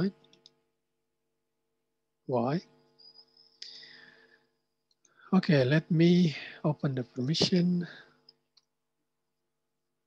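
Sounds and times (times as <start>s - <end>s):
person speaking: 5.2s - 8.2s.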